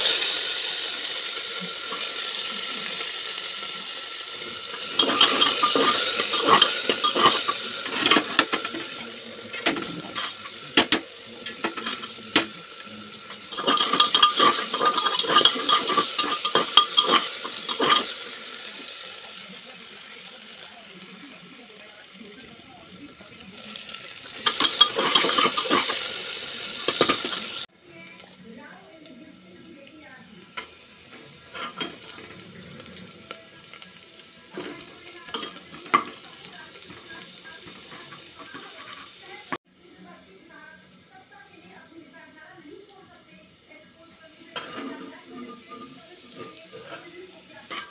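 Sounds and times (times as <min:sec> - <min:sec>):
food sizzling in oil: 0:00.0 - 0:47.9
metal utensils clinking: 0:04.4 - 0:18.4, 0:23.8 - 0:27.6, 0:31.5 - 0:32.4, 0:34.5 - 0:39.5, 0:44.5 - 0:47.9
metal spatula scraping pot: 0:04.7 - 0:12.6, 0:13.2 - 0:18.2, 0:24.4 - 0:26.1, 0:31.5 - 0:32.4, 0:44.5 - 0:47.9.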